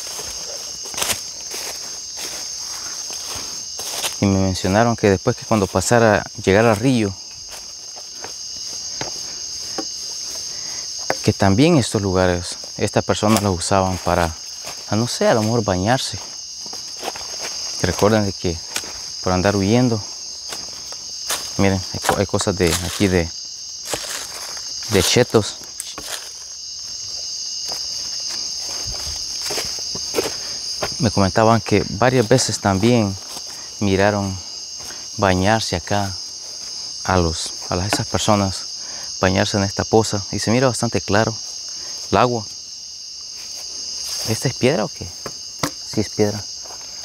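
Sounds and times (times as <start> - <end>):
footsteps on stones: 0.0 - 4.3, 6.6 - 11.4, 12.6 - 19.2, 19.9 - 35.1, 45.1 - 47.0
crickets and insects chirping: 0.0 - 47.0.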